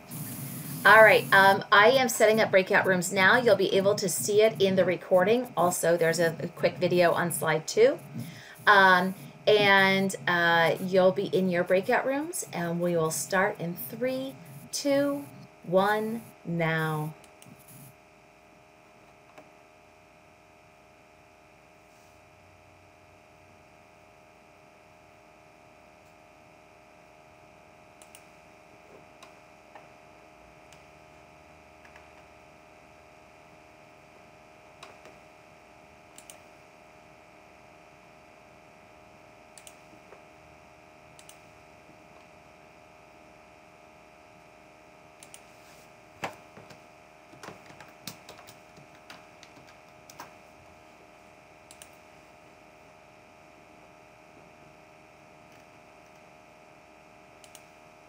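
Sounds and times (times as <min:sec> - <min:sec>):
keyboard and mouse clicks: 0:36.2 - 0:36.4, 0:46.2 - 0:50.3.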